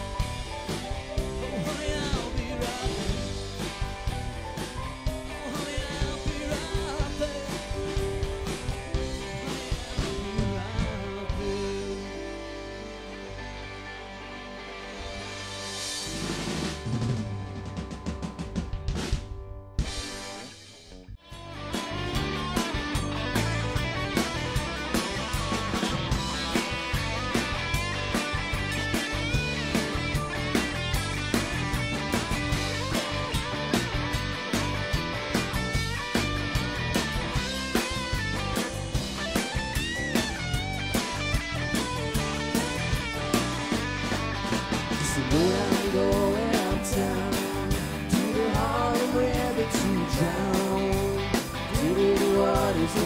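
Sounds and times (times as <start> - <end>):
drums with steady beat: 0.0 - 12.5, 15.0 - 53.0
electric guitars: 0.0 - 53.0.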